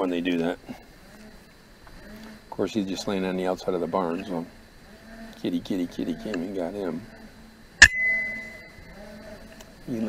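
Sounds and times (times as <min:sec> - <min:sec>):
ringing tone: 0:07.8 - 0:09.0.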